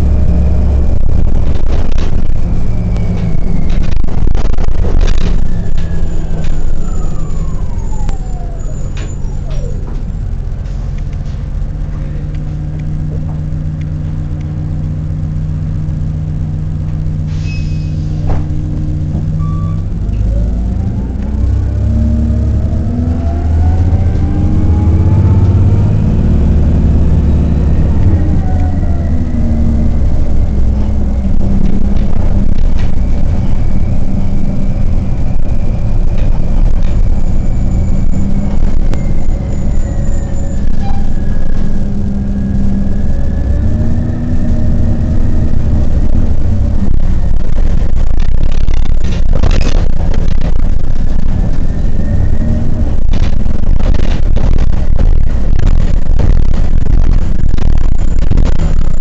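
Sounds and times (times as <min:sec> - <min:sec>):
bus engine running: 0:00.0 - 0:59.0
drivetrain whine: 0:00.0 - 0:59.0.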